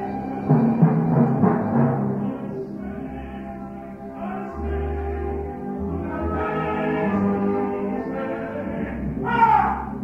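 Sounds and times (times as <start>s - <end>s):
opera singing voices: 0.0s - 10.0s
orchestra playing: 0.0s - 10.0s.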